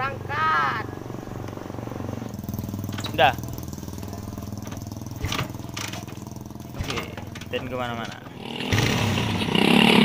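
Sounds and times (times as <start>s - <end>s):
small motorcycle engine running: 0.2s - 10.0s.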